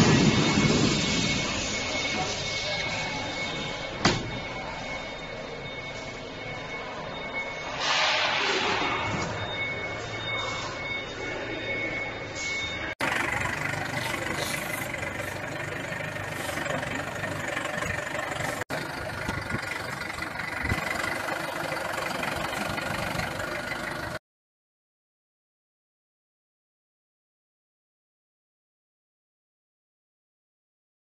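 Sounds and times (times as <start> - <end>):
high steady whining tones: 0.0 - 24.2
forklift engine running: 12.8 - 24.2.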